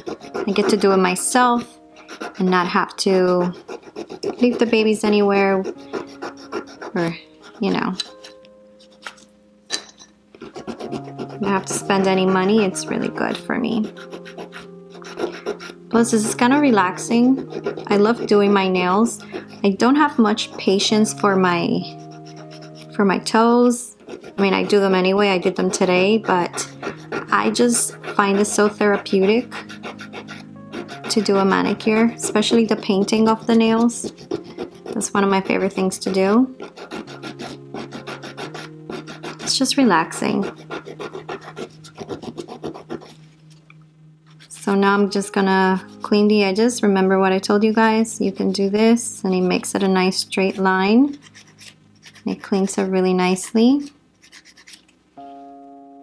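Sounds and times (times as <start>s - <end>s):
nail file rasping on fingernail: 0.0s - 9.2s, 10.4s - 22.9s, 23.9s - 43.2s, 45.4s - 46.3s, 47.7s - 54.8s
background music: 0.0s - 56.0s.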